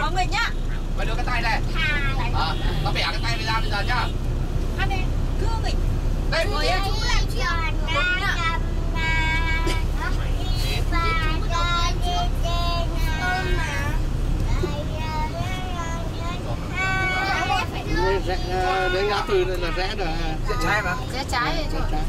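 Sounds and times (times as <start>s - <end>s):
vehicle rumble from inside cabin: 0.0s - 22.0s
small child singing and babbling: 10.2s - 18.1s.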